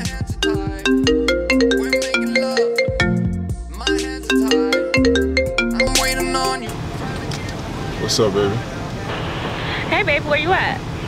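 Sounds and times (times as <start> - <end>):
phone ringtone marimba melody: 0.0 - 6.8.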